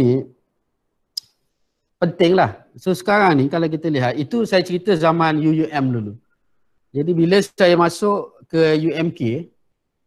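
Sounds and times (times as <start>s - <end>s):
man speaking: 0.0s - 0.4s, 2.0s - 6.2s, 6.9s - 9.6s.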